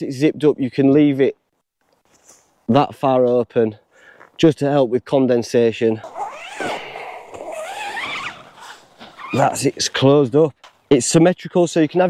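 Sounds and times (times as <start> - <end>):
tent zip being drawn shut: 6.0 - 9.6.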